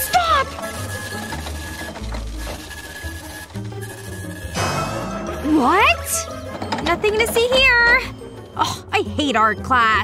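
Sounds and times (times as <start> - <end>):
office printer whirring: 0.0 - 4.5
background music: 0.0 - 10.0.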